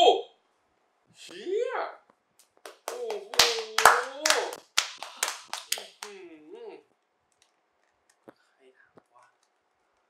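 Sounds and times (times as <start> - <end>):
people clapping: 2.4 - 6.2.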